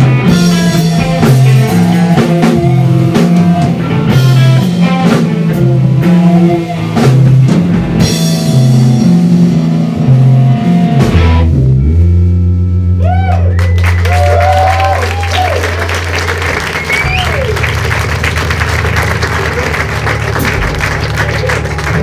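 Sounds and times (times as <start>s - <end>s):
distorted electric guitars: 0.0s - 13.1s, 15.9s - 22.0s
drum kit: 0.0s - 13.2s, 14.2s - 22.0s
bass guitar: 0.0s - 22.0s.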